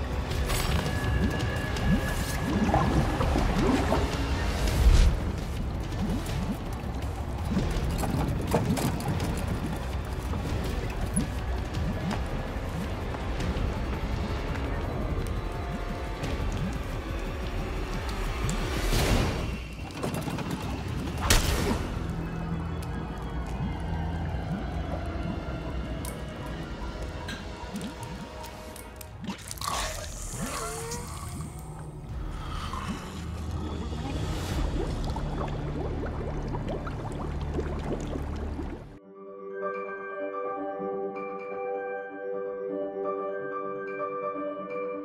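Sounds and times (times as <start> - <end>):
water bubbling and sloshing: 0.0 - 39.0
wet squelching and gurgling: 0.0 - 39.0
tense film score: 0.0 - 45.0.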